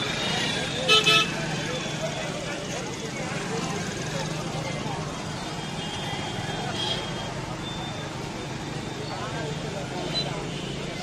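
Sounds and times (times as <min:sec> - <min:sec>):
people talking: 0:00.0 - 0:11.0
traffic noise: 0:00.0 - 0:11.0.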